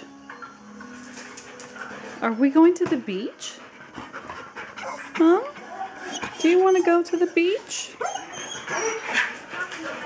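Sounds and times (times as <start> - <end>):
dog whining softly: 5.7 - 10.0.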